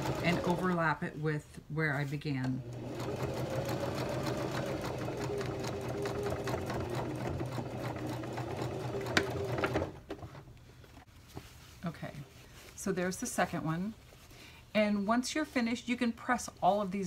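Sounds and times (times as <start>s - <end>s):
sewing machine running: 0.0s - 0.7s, 2.6s - 9.9s.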